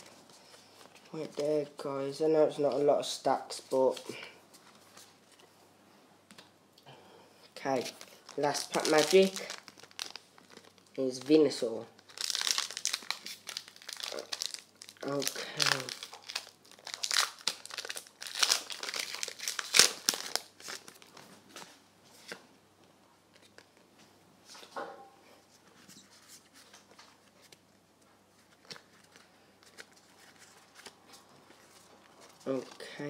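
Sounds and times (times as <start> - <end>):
trading cards rustling and clicking: 7.6 - 10.8
foil wrapper crinkling: 7.6 - 21.6.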